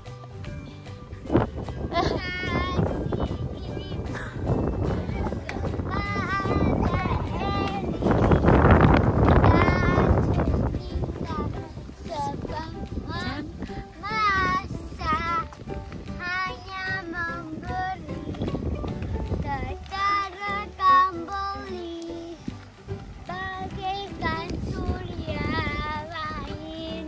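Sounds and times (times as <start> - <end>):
child singing: 1.9 - 4.5, 5.1 - 15.6, 16.2 - 18.8, 19.4 - 22.5, 23.2 - 27.0.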